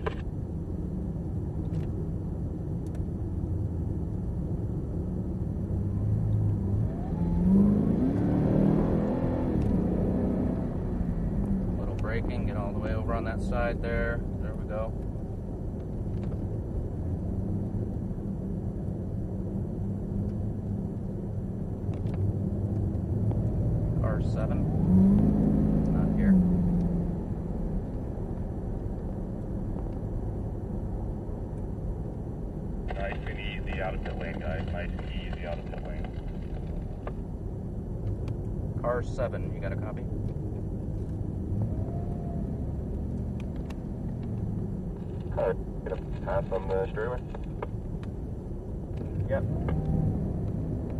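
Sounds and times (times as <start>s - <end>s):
car engine drone from inside: 0.0s - 50.9s
tyre and road noise: 4.5s - 50.9s.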